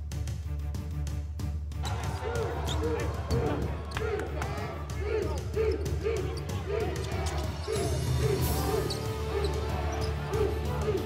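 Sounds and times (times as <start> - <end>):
arena music: 0.0 - 11.0
arena voices: 1.8 - 11.0.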